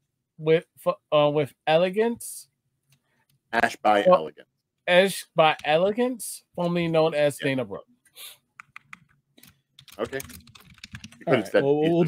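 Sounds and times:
computer keyboard typing: 8.6 - 11.3.

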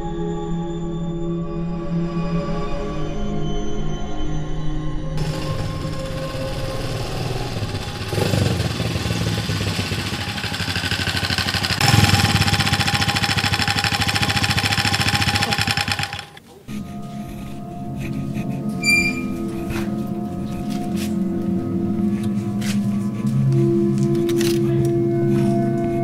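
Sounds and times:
small motorcycle engine running: 5.2 - 16.4.

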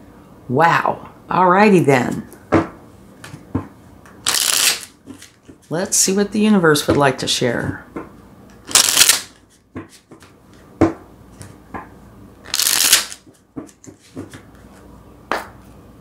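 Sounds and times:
cards being shuffled: 4.2 - 6.0, 8.7 - 10.7, 12.4 - 14.9
cards clicking and tapping: 12.5 - 14.7.

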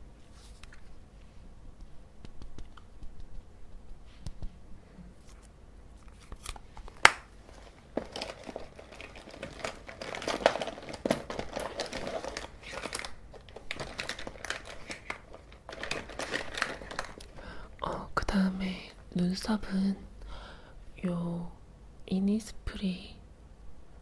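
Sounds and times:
packaging crinkling and rustling: 5.2 - 17.7.

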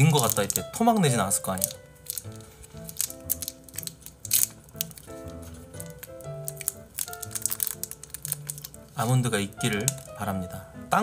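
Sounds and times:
plastic wrapper crinkling: 0.0 - 10.3
soft background music: 0.0 - 11.0.

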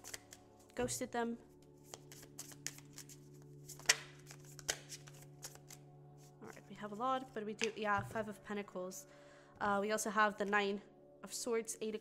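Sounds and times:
cards being shuffled: 0.0 - 0.8, 1.6 - 6.6.

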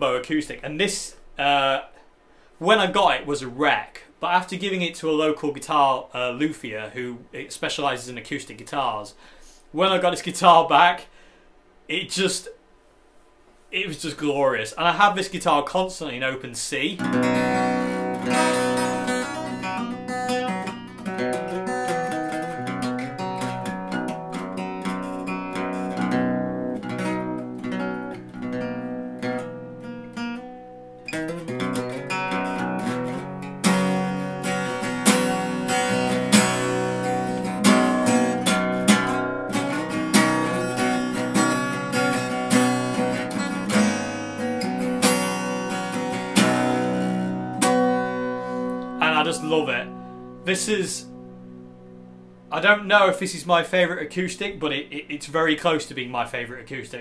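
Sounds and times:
acoustic guitar strumming: 17.0 - 56.5
acoustic guitar picked notes: 17.0 - 56.8.

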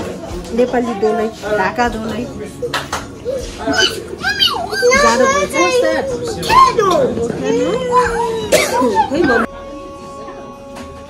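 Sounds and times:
young children talking and calling out: 3.2 - 9.5.

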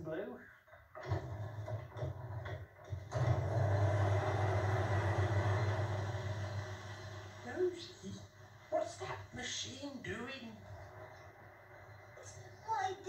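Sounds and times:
winding machine humming: 3.1 - 8.7.

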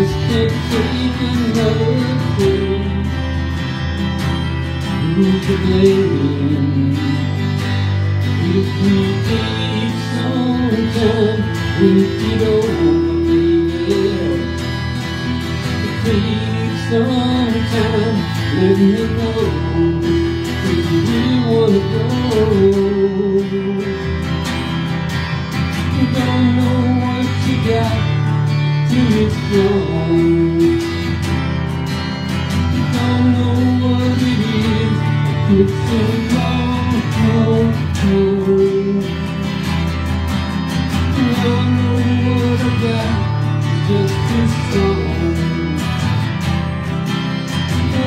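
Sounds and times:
acoustic guitars strumming chords: 0.0 - 48.0
picked guitar melody: 0.0 - 48.0.

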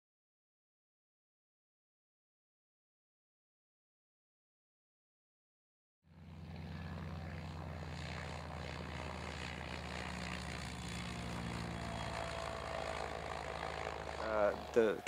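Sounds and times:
aircraft propeller running: 6.1 - 15.0.

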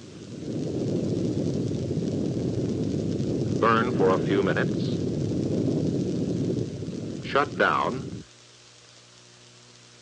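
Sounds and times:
rocket engine rumble: 0.0 - 8.4.

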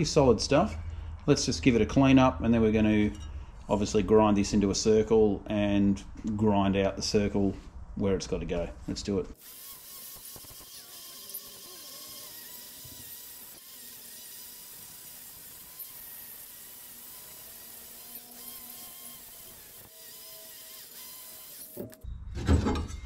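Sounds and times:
grinder grinding steel: 9.4 - 22.0.

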